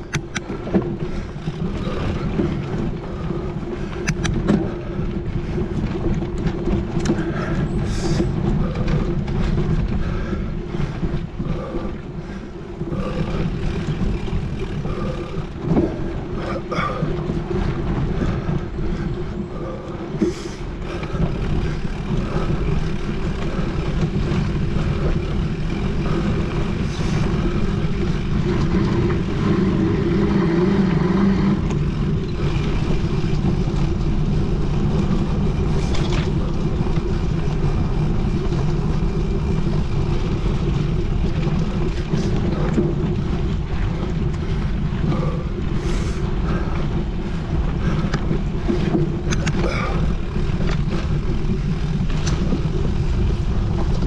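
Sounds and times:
bike tyres rolling on dirt: 0.0 - 54.0
wind on microphone: 0.0 - 54.0.

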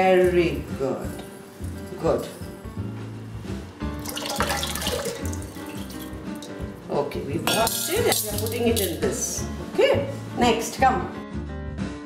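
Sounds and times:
background music with bass line: 2.5 - 12.0
lentils rinsed in a bowl: 4.0 - 6.6
kitchen tap running: 4.0 - 6.7.

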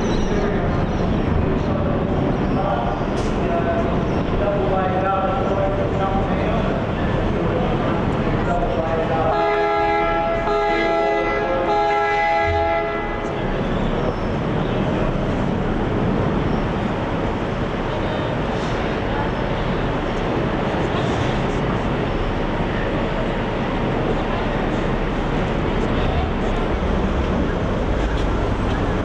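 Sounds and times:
multi-tone ship horn: 9.2 - 13.5.

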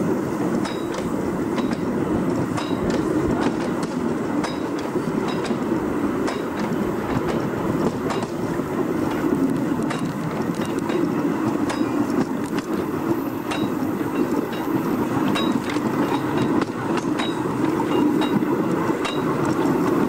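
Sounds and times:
railway carriage rumbling: 0.0 - 20.0
wheels clicking on rails: 0.0 - 20.0.

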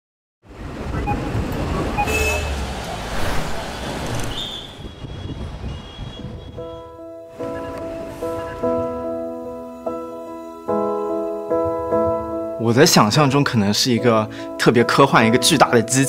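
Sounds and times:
street traffic: 0.4 - 9.6
soft piano music: 6.4 - 16.0.

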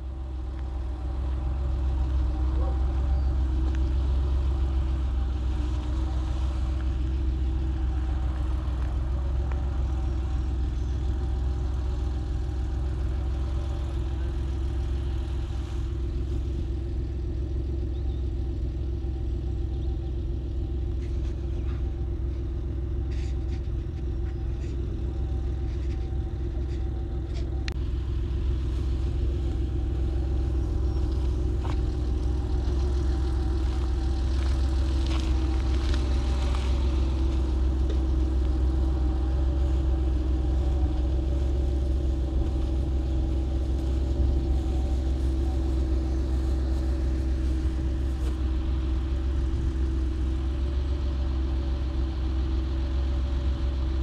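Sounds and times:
engine idling: 0.0 - 54.0.

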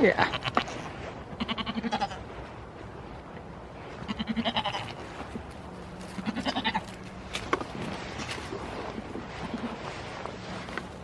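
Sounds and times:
goat bleating: 0.1 - 2.2, 4.1 - 5.0, 6.2 - 7.0.

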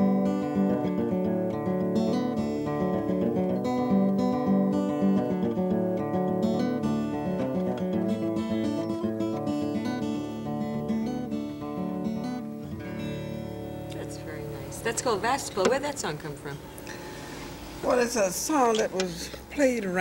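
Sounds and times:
fingerpicked acoustic guitar: 0.0 - 17.8.

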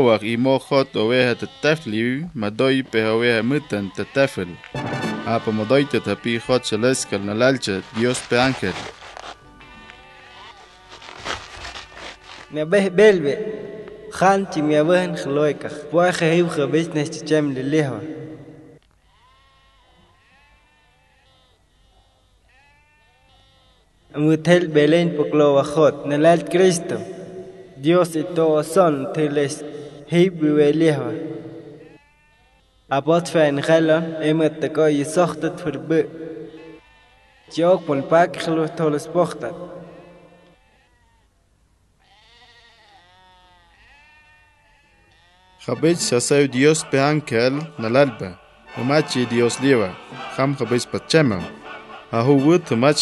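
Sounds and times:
man speaking: 0.0 - 8.9, 12.5 - 18.3, 24.2 - 27.1, 27.8 - 31.5, 32.9 - 36.1, 37.5 - 40.0, 45.6 - 53.0
sheep bleating: 0.3 - 24.8, 28.9 - 41.3, 42.0 - 53.0.

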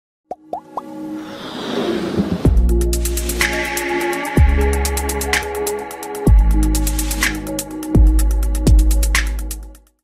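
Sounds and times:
whoosh: 1.0 - 3.6.

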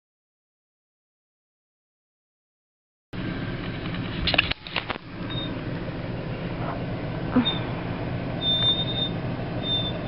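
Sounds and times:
distant engine rumble: 3.2 - 10.0.

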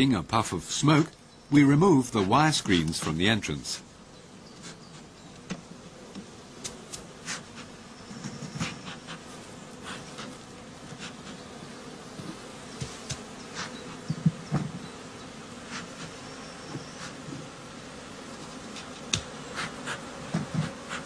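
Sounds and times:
honeybees buzzing: 0.0 - 21.0.

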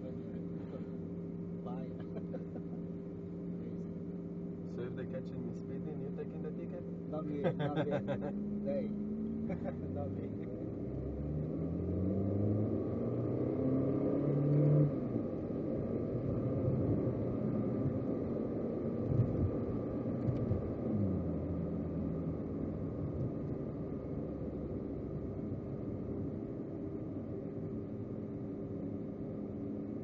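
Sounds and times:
sports car engine accelerating: 0.0 - 30.0.

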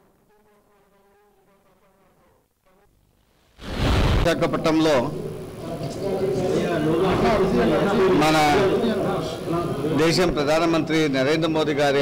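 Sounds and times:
faint wavering buzz: 0.0 - 12.0.

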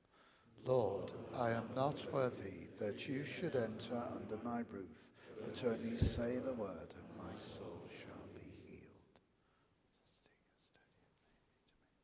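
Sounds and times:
faint whispering: 0.6 - 9.2, 9.9 - 12.0.

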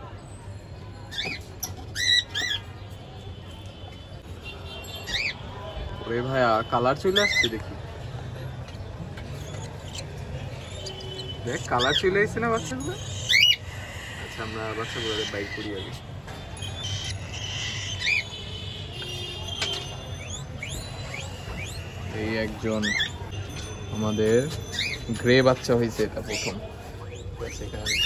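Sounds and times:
budgerigar chicks calling: 8.7 - 16.0, 16.6 - 18.6, 20.2 - 23.3, 26.1 - 28.0
pet bird squawking: 9.4 - 16.0, 16.6 - 18.4, 20.1 - 23.3, 26.3 - 28.0.

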